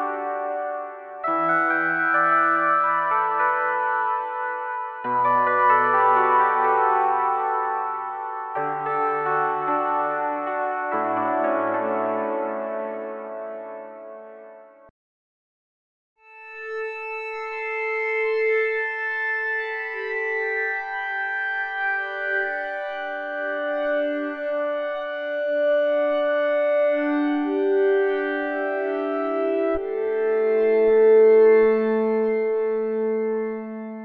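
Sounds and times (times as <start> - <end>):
synthesizer playing slow held chords: 0.0 - 14.9.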